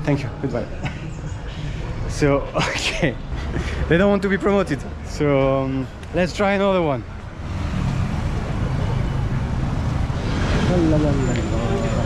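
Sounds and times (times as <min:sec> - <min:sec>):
vehicle engines: 0:00.0 - 0:12.0
tyres on a wet road: 0:01.4 - 0:12.0.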